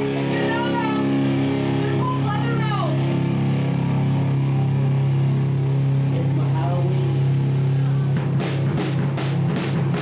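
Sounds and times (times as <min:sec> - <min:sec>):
electric guitar and bass drone: 0:00.0 - 0:10.0.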